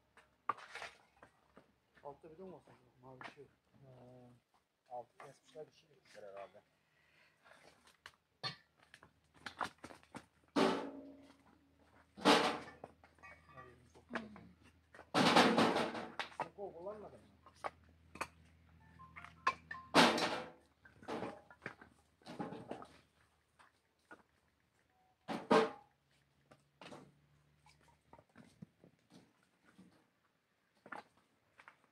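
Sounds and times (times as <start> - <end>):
firewood logs knocking and clattering: 7.8 - 16.7, 17.3 - 24.4, 25.3 - 30.1.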